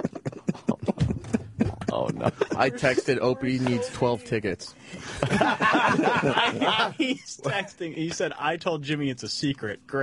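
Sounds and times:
men laughing hard: 0:00.0 - 0:03.1, 0:05.0 - 0:07.3.

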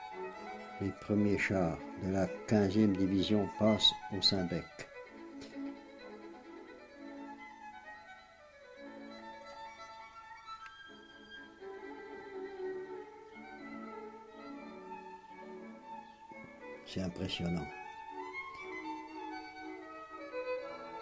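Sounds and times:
violin slow melody: 0:00.0 - 0:21.0.

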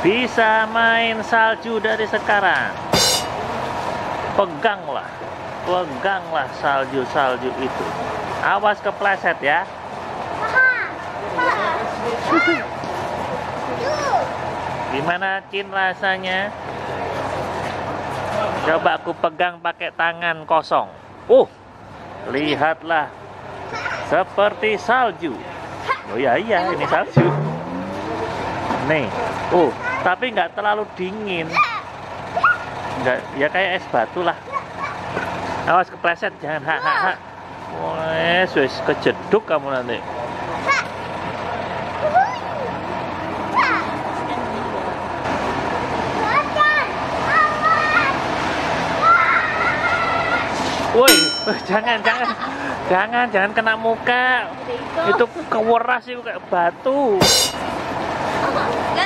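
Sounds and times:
outdoor background noise: 0:00.0 - 0:59.0
child's high-pitched exclamations: 0:49.0 - 0:50.5.

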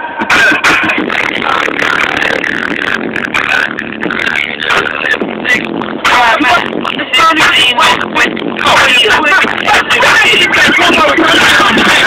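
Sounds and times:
rap music on car stereo: 0:00.0 - 0:12.0.

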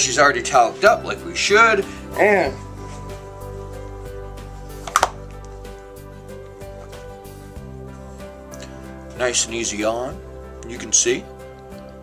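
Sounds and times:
background music held tones: 0:00.0 - 0:12.0.

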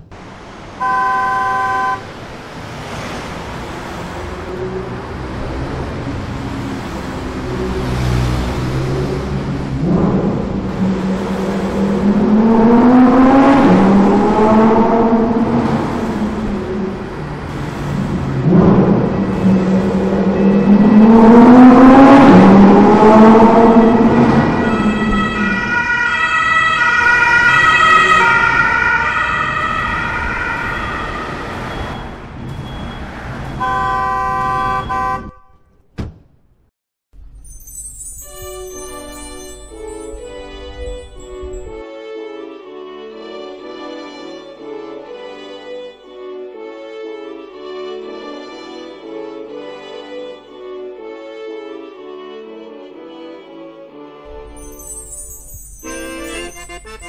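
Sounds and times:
siren wailing: 0:09.8 - 0:17.4, 0:18.2 - 0:33.9
organ-like chord tones: 0:55.9 - 0:57.0.

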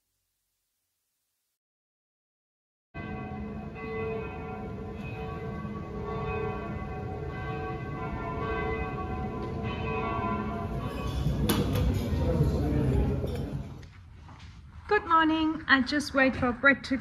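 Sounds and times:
church bells ringing: 0:03.0 - 0:13.8.

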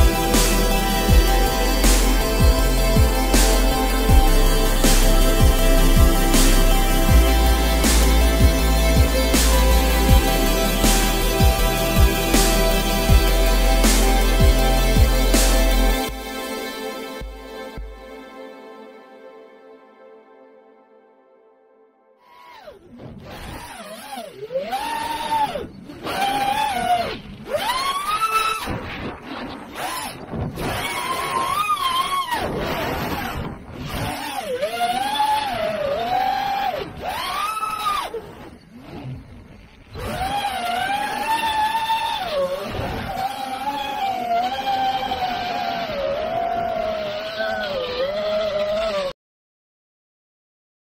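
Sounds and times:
drone motors whining: 0:00.0 - 0:18.1, 0:22.2 - 0:49.2.

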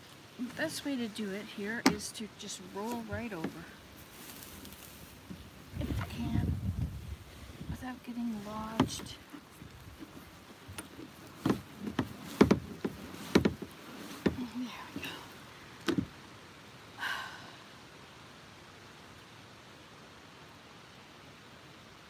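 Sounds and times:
knocks on plastic kayak hull: 0:10.0 - 0:14.4, 0:15.8 - 0:16.2.

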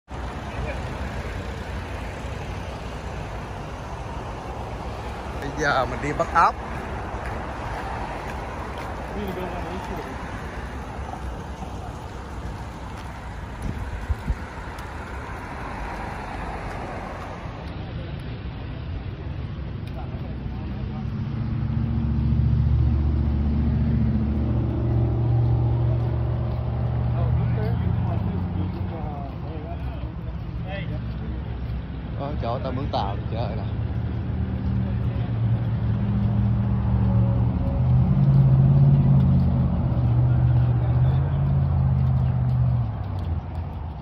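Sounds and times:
cars passing: 0:00.0 - 0:44.0
low engine rumble: 0:00.1 - 0:44.0.

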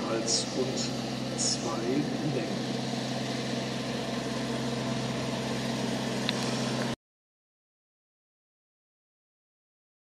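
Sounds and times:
low machine hum: 0:00.0 - 0:07.0
steady hiss: 0:00.1 - 0:07.0.

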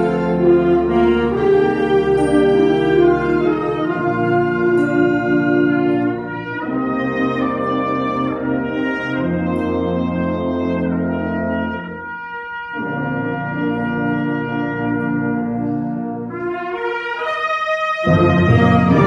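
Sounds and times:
concert band brass chords: 0:00.0 - 0:19.0.

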